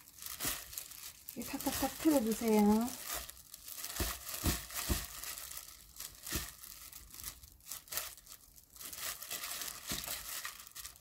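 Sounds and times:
plastic glove crinkling: 0.0 - 11.0.

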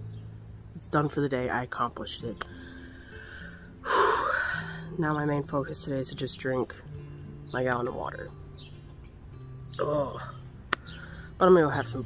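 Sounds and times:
background music with held notes: 0.0 - 12.0
person breathing heavily: 2.5 - 4.9, 10.9 - 11.4.

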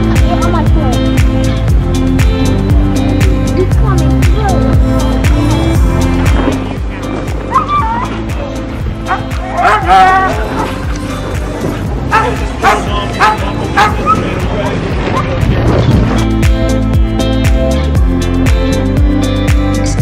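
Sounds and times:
background music: 0.0 - 20.0
dogs barking and yipping: 7.4 - 8.3, 9.0 - 11.0, 12.1 - 15.4.

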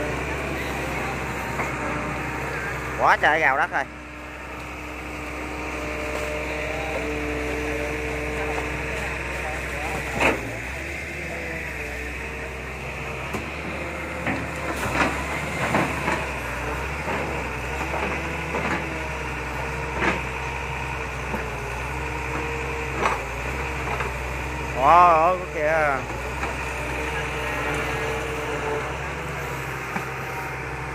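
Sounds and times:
excavator engine and hydraulics: 0.0 - 30.9.

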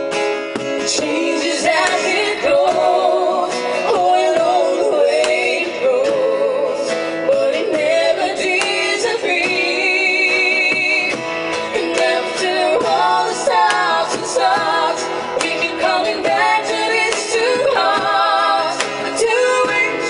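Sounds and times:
strummed acoustic guitar: 0.0 - 20.0
woman singing: 0.8 - 20.0
cajon drumming: 10.6 - 20.0.

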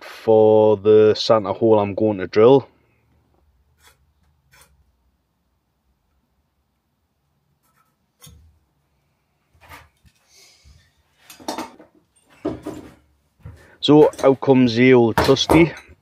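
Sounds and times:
wood scraping: 3.8 - 4.8.

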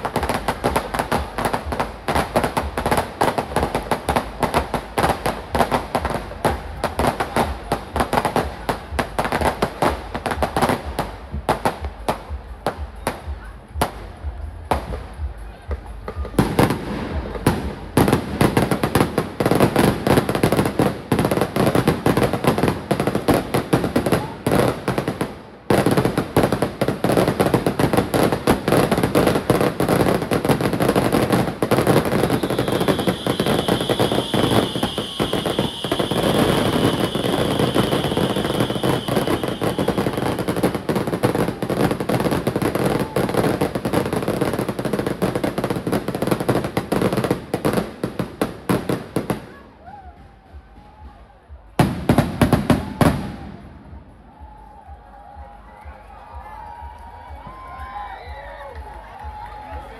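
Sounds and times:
fireworks bangs and crackling: 0.0 - 54.6.

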